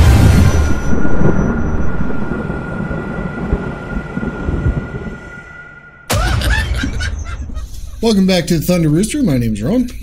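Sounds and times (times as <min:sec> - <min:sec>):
steady high ringing tone: 0:00.0 - 0:06.1
deep rumble: 0:00.0 - 0:08.0.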